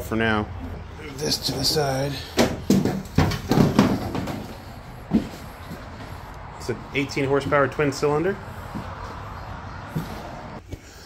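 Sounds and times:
plastic hood knocking and clattering: 2.4 - 5.4.

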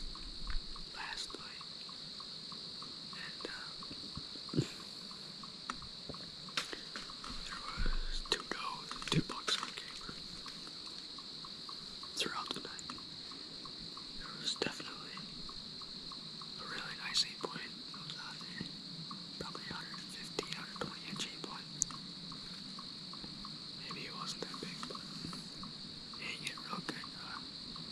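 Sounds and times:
high-pitched insect chorus: 0.0 - 27.9
person whispering: 0.9 - 1.6, 3.2 - 3.9, 4.6 - 4.9, 7.4 - 10.2, 12.2 - 12.9, 14.2 - 15.2, 16.6 - 18.7, 19.4 - 21.7, 23.8 - 25.5, 26.2 - 27.4.

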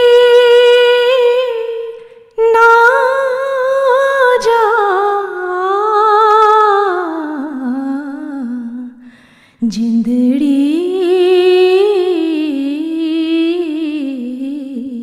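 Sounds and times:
woman singing unaccompanied: 0.0 - 9.0, 9.6 - 15.0
singer breathing: 9.0 - 9.6.

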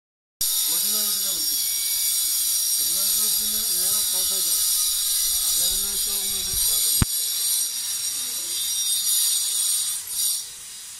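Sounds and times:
insects droning: 1.4 - 7.0.

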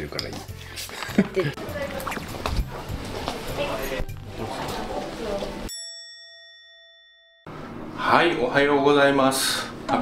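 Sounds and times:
bell-like ding: 5.7 - 7.5.

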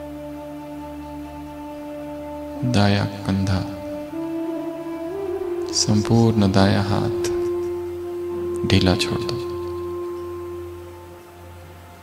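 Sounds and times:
soft meditation music: 0.0 - 12.0.

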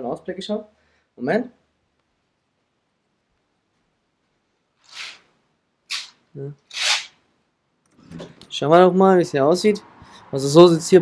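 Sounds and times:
curtain fabric rustling: 4.7 - 5.3, 5.9 - 7.2.

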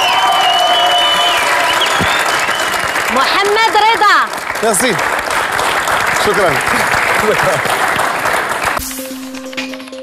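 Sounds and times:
studio audience applause: 0.0 - 9.7
ident music with ticking percussion: 8.8 - 10.0.

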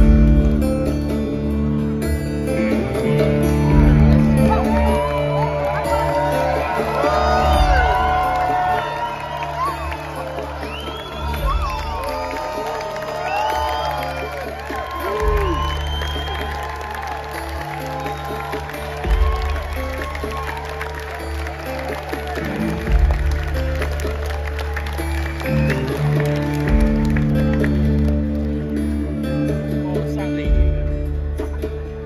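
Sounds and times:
crowd cheering and clapping: 0.0 - 32.0
live band playing slow song: 0.0 - 32.0
crowd whooping: 3.2 - 28.8.

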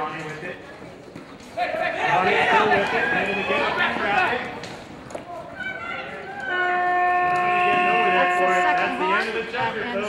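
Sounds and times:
timer horn long note: 6.5 - 9.4.

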